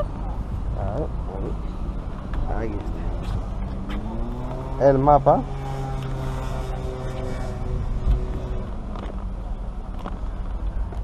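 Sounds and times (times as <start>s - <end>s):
vehicle engine rising in pitch: 0.0s - 9.3s
traffic rumble: 0.0s - 11.0s.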